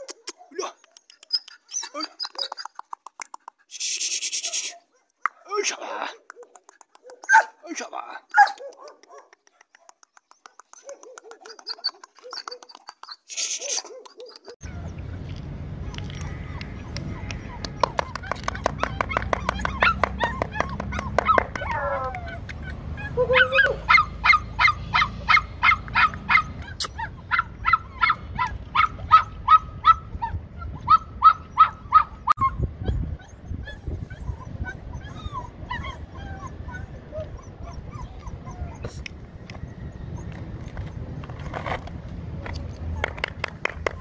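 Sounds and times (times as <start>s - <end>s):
puppy yipping: 0.0s - 3.0s, 6.3s - 7.6s, 8.3s - 15.3s, 15.9s - 39.6s.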